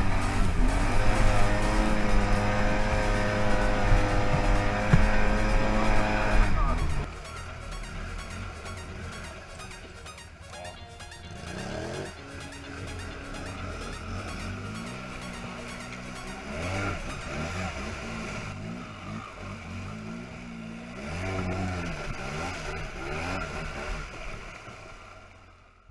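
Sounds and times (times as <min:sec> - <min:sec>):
quad bike engine revving: 0:00.0 - 0:10.3, 0:11.3 - 0:25.1.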